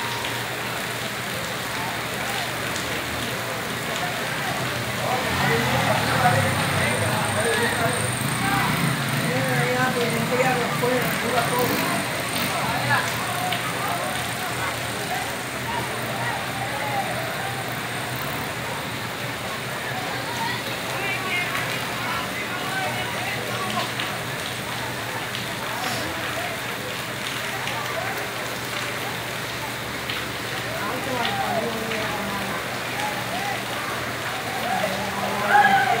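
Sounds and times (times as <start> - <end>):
rain hissing: 0.0 - 36.0
street noise: 0.0 - 36.0
truck engines rumbling: 0.0 - 36.0.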